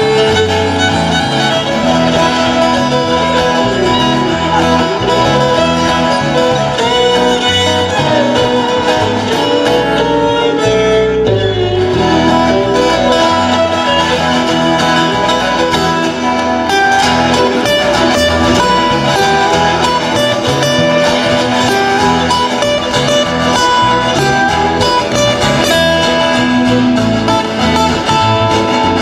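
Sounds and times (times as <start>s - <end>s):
fiddle solo: 0.0s - 29.0s
strummed acoustic guitars: 0.0s - 29.0s
walking bass line: 0.0s - 29.0s.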